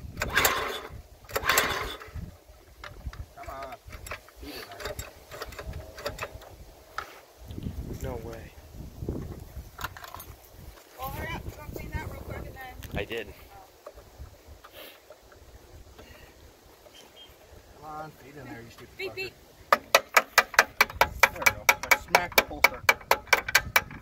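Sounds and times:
hand tools clicking and rattling: 0.1 - 7.1, 9.7 - 10.9, 19.7 - 24.0.

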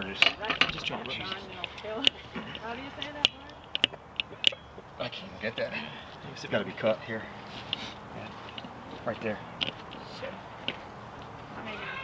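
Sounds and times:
indistinct voices talking: 0.0 - 12.0
sharp clicks and taps: 1.6 - 4.6, 9.6 - 10.0.

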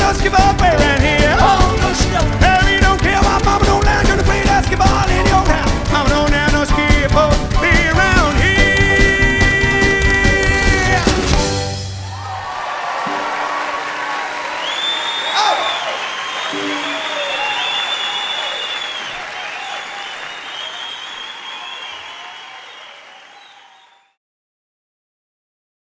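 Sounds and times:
audience applauding and cheering: 0.0 - 24.2
high whistles: 14.6 - 24.2.

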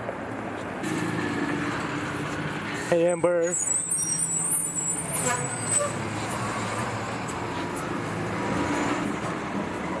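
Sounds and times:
passing vehicles: 0.0 - 10.0.

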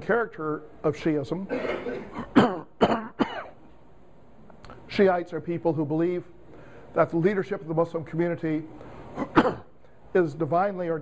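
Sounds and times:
man coughing: 1.5 - 3.6, 9.2 - 9.8.

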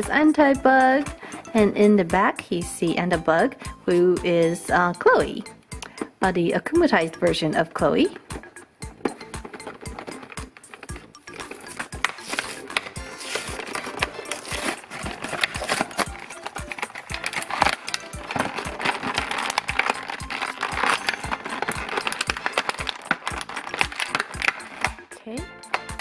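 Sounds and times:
background music with steady beat: 0.0 - 26.0
plastic packaging crinkling: 8.0 - 26.0
cardboard being peeled: 9.8 - 25.0.

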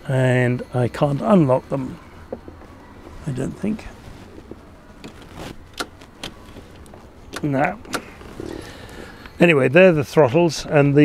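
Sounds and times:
throttle levers clicking and knocking: 5.0 - 8.2.

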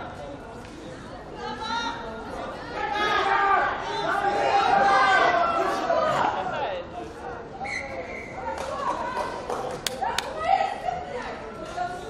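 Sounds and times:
people talking and calling out: 0.8 - 12.0.

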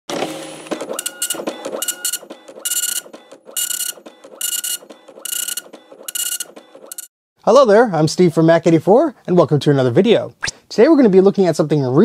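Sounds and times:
dot-matrix printer printing: 0.1 - 7.1.

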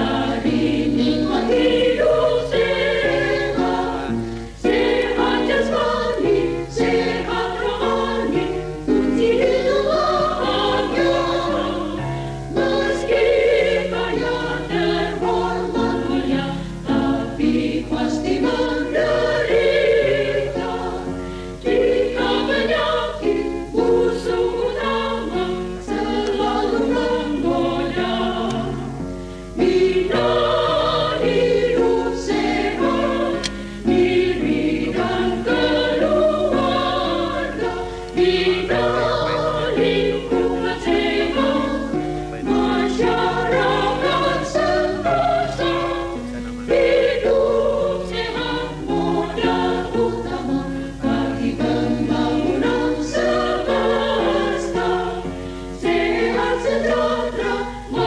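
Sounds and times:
choir singing a march: 0.0 - 58.0.

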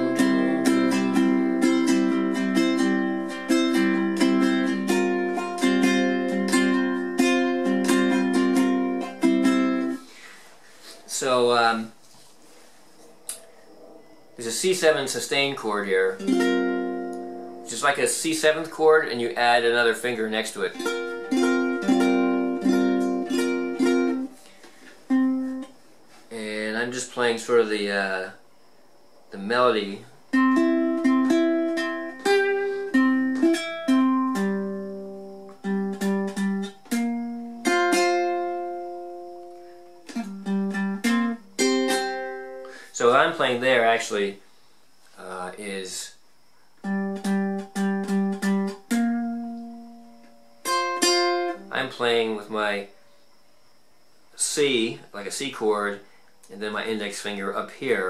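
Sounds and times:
ukulele melody: 0.0 - 10.1, 16.1 - 17.7, 20.6 - 24.4, 25.1 - 25.7, 30.3 - 42.8, 46.8 - 51.7.

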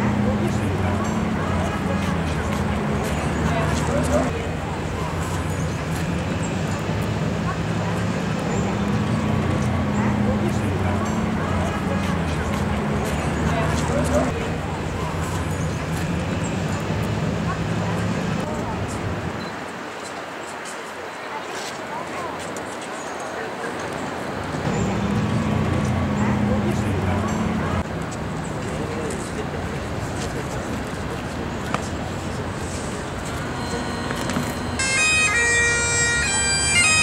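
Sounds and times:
loud low steady drone: 0.0 - 19.3, 24.6 - 28.0, 32.0 - 37.0
vehicle engine humming: 0.0 - 19.4, 24.3 - 37.0
bystanders talking: 0.0 - 37.0
street noise: 0.0 - 37.0.

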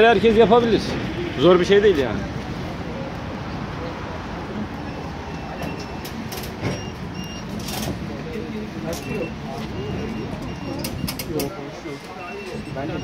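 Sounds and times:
turnstile card reader beeps: 4.9 - 8.0, 8.8 - 13.0.

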